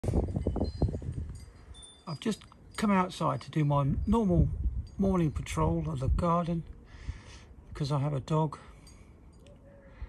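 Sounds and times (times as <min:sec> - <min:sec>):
faint high ringing tones: 0:00.1 - 0:06.8, 0:07.6 - 0:10.0.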